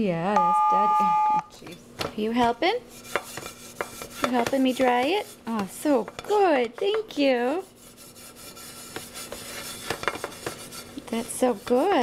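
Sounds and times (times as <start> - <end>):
towel rubbing ridged griddle: 7.2 - 12.0.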